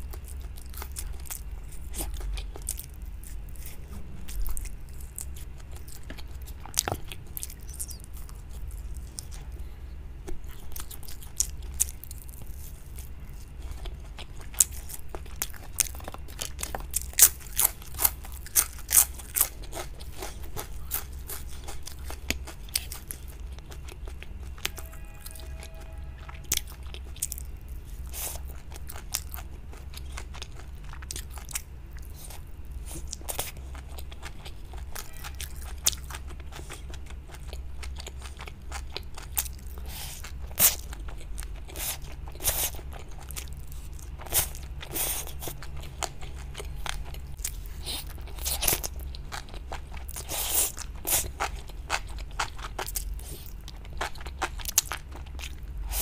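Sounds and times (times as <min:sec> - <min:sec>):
person crunching crisp food: 0:00.0 - 0:56.0.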